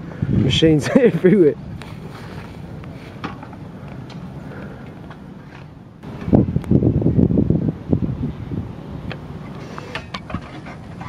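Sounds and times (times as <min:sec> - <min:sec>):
wind buffeting microphone: 0:00.0 - 0:03.2, 0:06.0 - 0:11.0.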